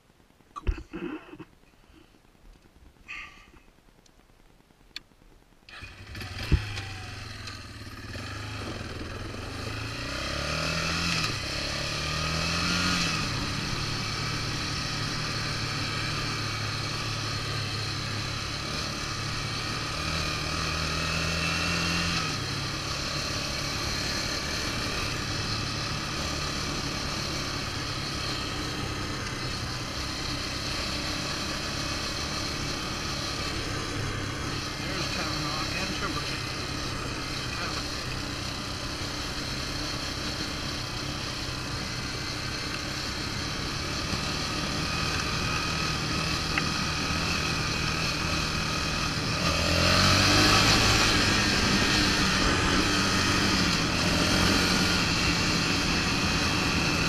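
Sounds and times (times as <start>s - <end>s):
gravel under tyres: 0.0s - 57.0s
quad engine accelerating: 5.7s - 57.0s.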